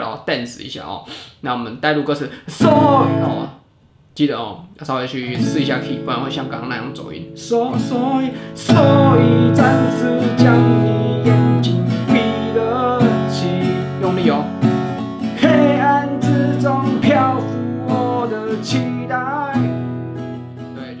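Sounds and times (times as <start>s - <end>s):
acoustic guitar strumming: 2.5s - 3.6s, 5.3s - 20.9s
man singing: 2.5s - 3.6s, 5.3s - 14.6s, 15.3s - 19.8s.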